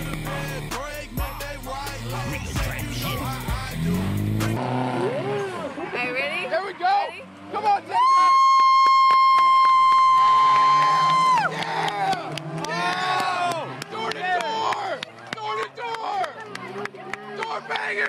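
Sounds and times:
spectators shouting: 5.1 - 18.0.

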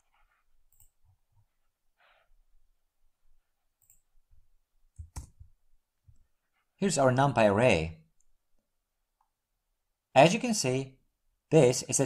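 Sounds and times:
computer mouse click: 0.7 - 1.0, 3.8 - 4.0, 5.0 - 5.4.

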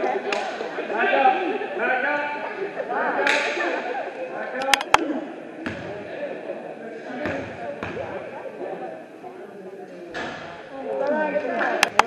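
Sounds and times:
voices echoing in gym: 0.0 - 12.0.

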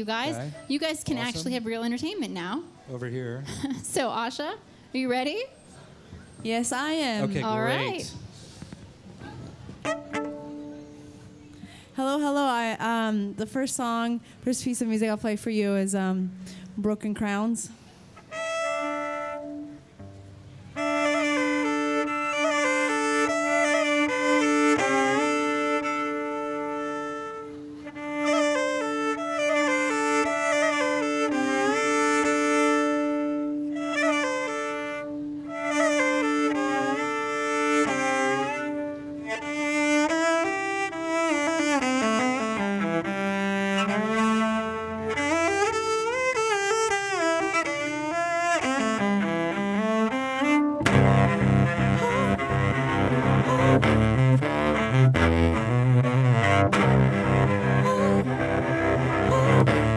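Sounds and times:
solo cello bowed: 9.7 - 11.7, 18.2 - 59.9.

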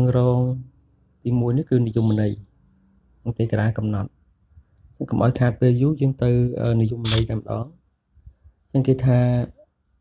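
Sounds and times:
person speaking: 1.3 - 2.5, 5.0 - 7.7.

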